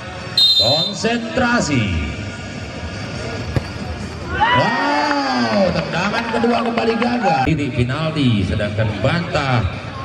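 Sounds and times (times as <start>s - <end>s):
background noise: 0.0s - 10.0s
football kicked thud: 3.5s - 4.0s.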